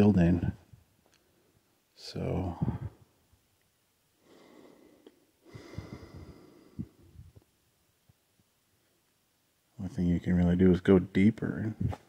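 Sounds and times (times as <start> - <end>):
person breathing: 4.2 - 7.4.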